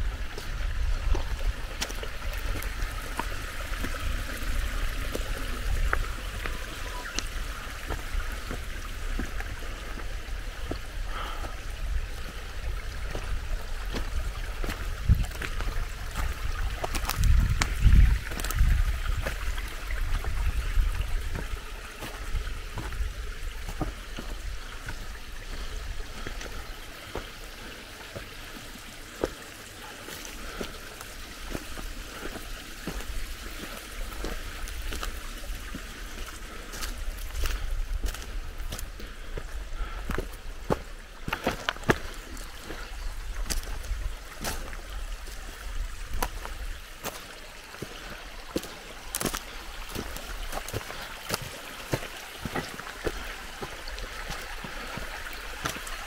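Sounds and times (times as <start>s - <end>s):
footsteps crunching over stones: 0.0s - 56.0s
stream trickling: 0.0s - 56.0s.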